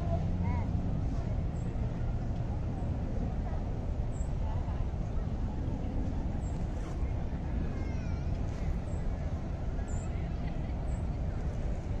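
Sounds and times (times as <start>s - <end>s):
faint high-pitched cry: 7.7s - 8.4s.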